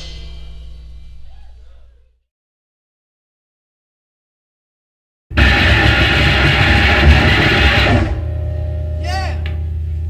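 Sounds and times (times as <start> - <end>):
distorted noise rock: 5.3 - 10.0
low hum: 5.3 - 10.0.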